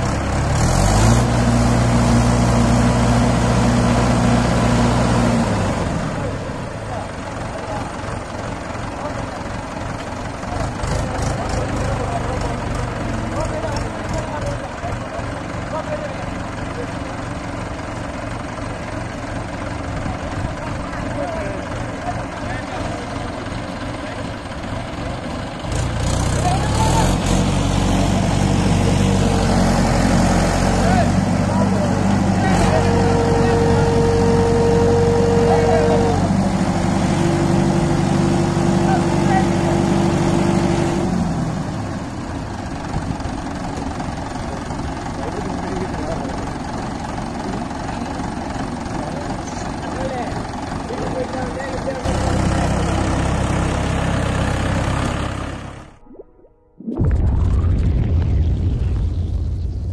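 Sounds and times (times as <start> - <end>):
diesel tractor engine revving: 0.0 - 56.0
voices calling out: 30.6 - 37.8.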